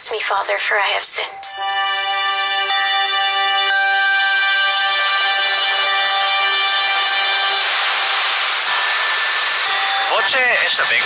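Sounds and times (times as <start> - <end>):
held musical chord: 1.4 - 11.0
loud hiss-like rushing noise: 5.6 - 11.0.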